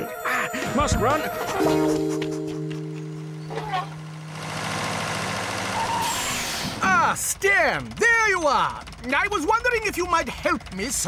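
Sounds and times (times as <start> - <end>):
held music note: 0.0 - 5.3
tractor engine approaching: 0.0 - 11.0.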